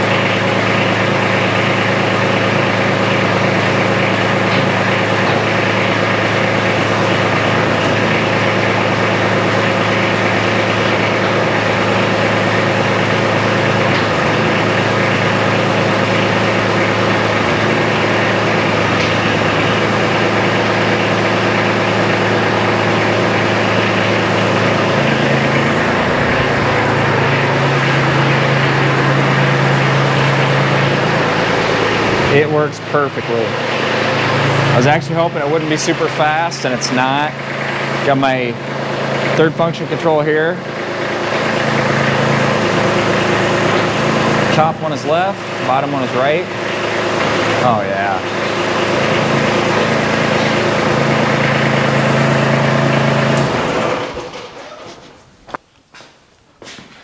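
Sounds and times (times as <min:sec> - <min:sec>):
tractor diesel engine running: 0:00.0 - 0:55.6.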